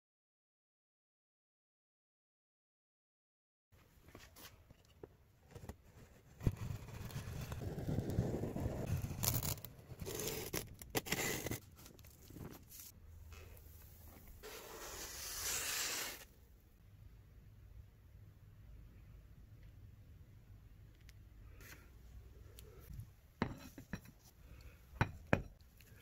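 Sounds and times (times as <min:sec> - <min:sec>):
cardboard scraping: 0:05.5 - 0:12.9, 0:14.2 - 0:16.3
knife slitting packing tape: 0:08.9 - 0:11.6, 0:14.5 - 0:16.2.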